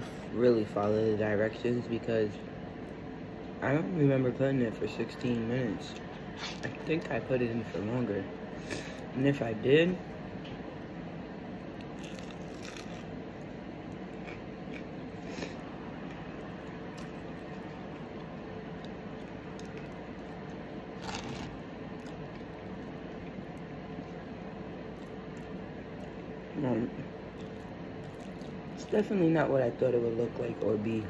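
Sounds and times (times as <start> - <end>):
close-up chewing: 11.7 - 26.5, 27.3 - 29.0.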